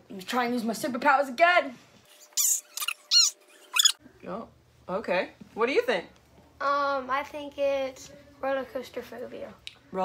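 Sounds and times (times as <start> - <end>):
high-pitched squeaks: 2.3 - 4.0.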